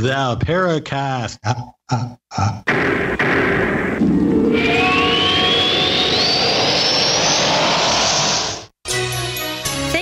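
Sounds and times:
rising whoosh with whistle: 4.1 - 8.7.

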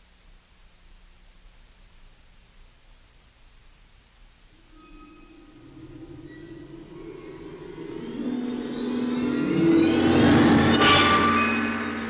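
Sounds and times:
sharp hit: 4.6 - 12.0
synthesized rising swell: 4.6 - 12.0.

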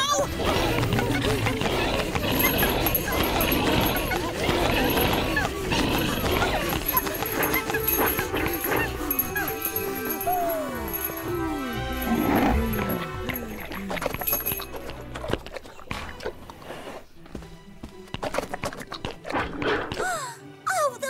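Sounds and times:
cartoon background music: 0.0 - 21.0.

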